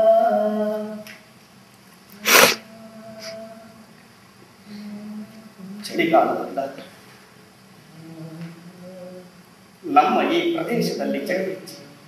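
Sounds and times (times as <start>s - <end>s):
faint hum: 0.0s - 12.0s
breathy burst from person: 2.2s - 2.6s.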